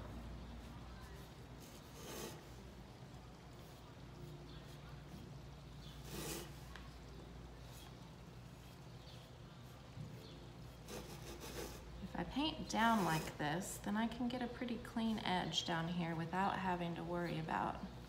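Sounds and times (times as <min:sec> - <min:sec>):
paintbrush strokes on ceramic: 0:00.0 - 0:18.0
steady low hum: 0:00.0 - 0:18.0.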